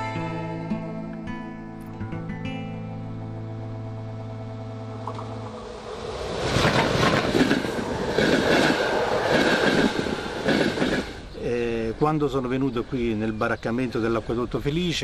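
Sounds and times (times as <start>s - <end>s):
held music chord: 0.0s - 6.0s
rattling vehicle passing: 5.0s - 11.2s.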